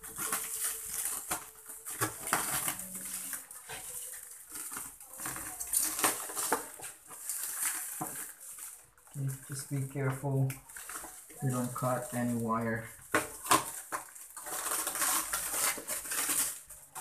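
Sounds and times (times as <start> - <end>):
plastic wrap crinkling: 0.0 - 17.0
scissors cutting plastic: 0.0 - 17.0.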